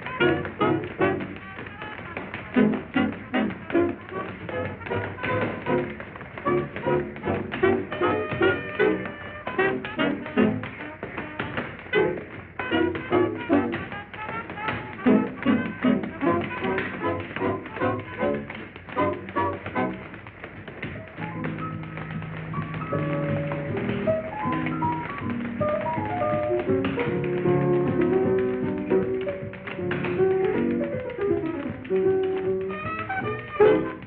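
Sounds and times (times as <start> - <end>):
tap shoes tapping on stage: 0.0 - 34.0.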